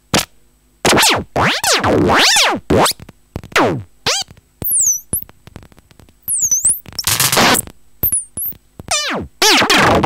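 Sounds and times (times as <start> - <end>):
sharp clicks: 4.2 - 8.9
high synth sweep: 4.6 - 5.2, 6.3 - 8.6
glitchy electronic music: 4.6 - 5.3, 6.2 - 8.6.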